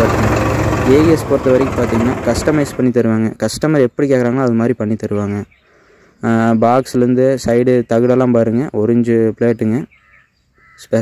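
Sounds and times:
man talking: 0:00.0 - 0:05.5, 0:06.2 - 0:09.9
faint bird calls: 0:09.5 - 0:11.0.

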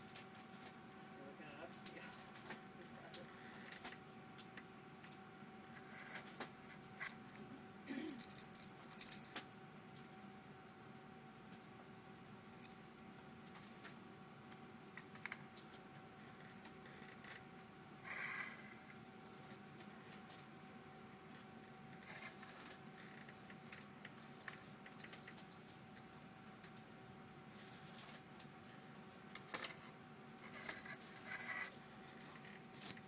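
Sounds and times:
metal shards clinking and rattling: 0:08.2 - 0:09.3.

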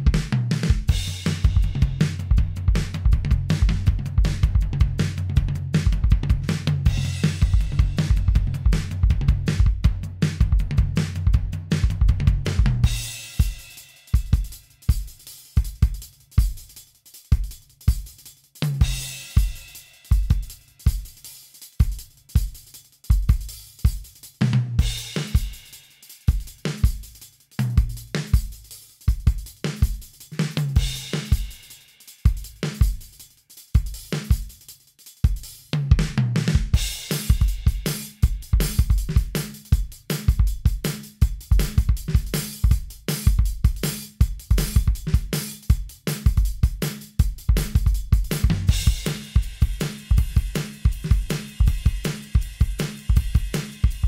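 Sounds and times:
drum track groove: 0:00.0 - 0:54.0.

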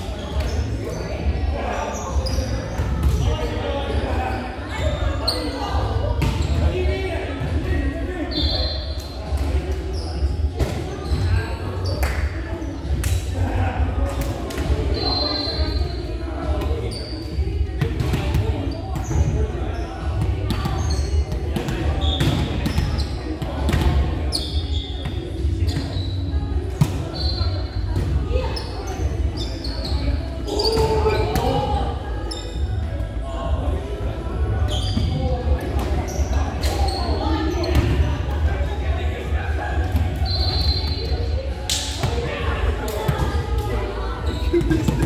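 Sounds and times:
shoes squeaking on court: 0:28.5 - 0:31.6, 0:34.7 - 0:38.0, 0:40.1 - 0:41.3.

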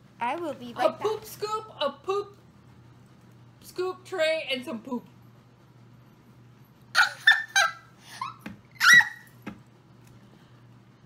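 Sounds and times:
high-pitched laughter: 0:06.9 - 0:09.3.

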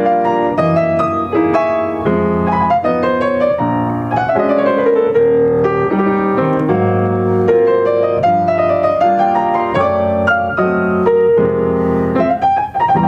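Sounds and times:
slow jazz piano ballad: 0:00.0 - 0:13.0.

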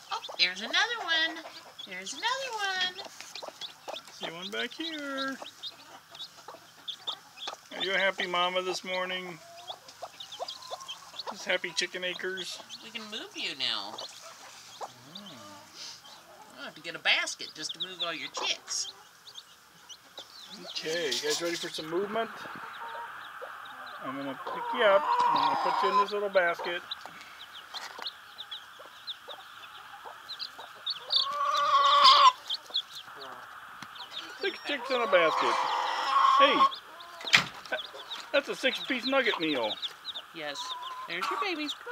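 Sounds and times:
chicks peeping: 0:00.0 - 0:41.9
drawn-out chicken call: 0:00.0 - 0:41.9.

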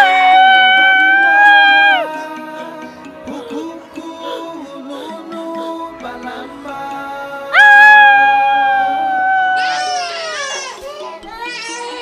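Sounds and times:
infant crying: 0:00.0 - 0:02.2, 0:07.6 - 0:12.0
soft background film music: 0:00.0 - 0:12.0.

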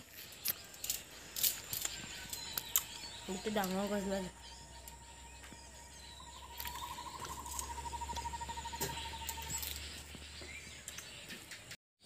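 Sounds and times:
animal rapid trilling call: 0:06.2 - 0:10.0.

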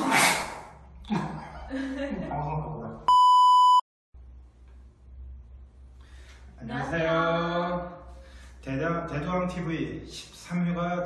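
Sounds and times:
electronic beep: 0:03.1 - 0:03.8.

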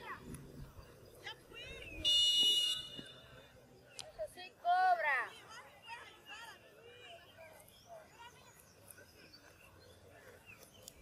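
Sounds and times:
referee's whistle blast: 0:02.0 - 0:03.3.

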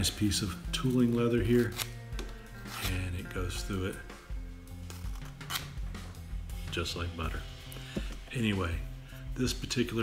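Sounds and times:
background music: 0:00.0 - 0:10.0
knife slicing leather: 0:02.6 - 0:03.1.

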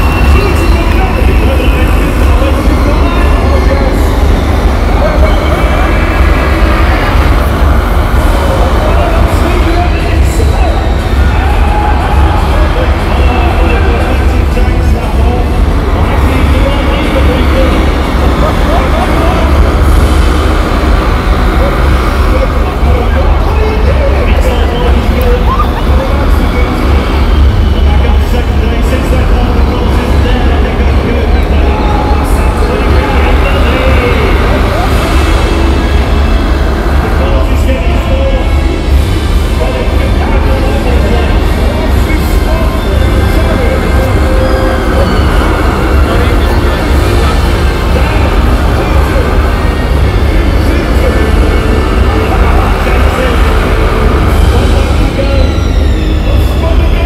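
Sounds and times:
low rumble: 0:00.0 - 0:57.0
music over public address: 0:00.0 - 0:57.0
small vehicles racing: 0:00.0 - 0:57.0
voice over public address: 0:00.0 - 0:57.0.

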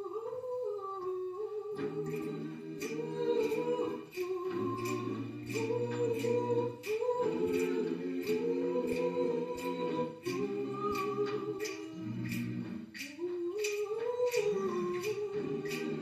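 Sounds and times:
choir singing in harmony: 0:00.0 - 0:16.0
steady sharp beat: 0:01.8 - 0:16.0.

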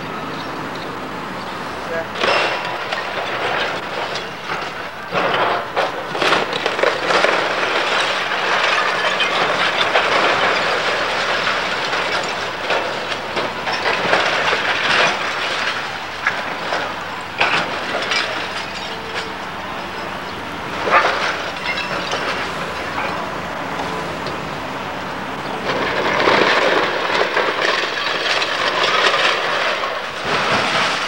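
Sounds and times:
masonry crashing: 0:00.0 - 0:31.0
falling rubble rattling: 0:01.8 - 0:31.0.

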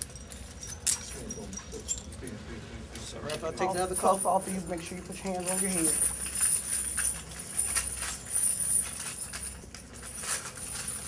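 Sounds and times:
handcuffs jingling and clicking: 0:00.0 - 0:02.3, 0:03.6 - 0:11.0.

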